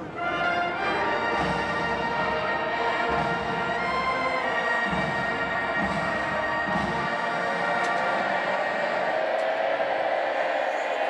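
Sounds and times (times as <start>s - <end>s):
brass chord sustained: 0.0s - 7.9s.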